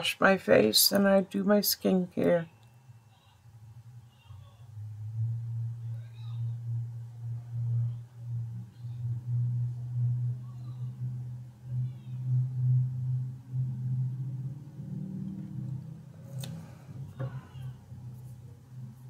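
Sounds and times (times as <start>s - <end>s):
pulsing low droning hum: 3.5s - 19.0s.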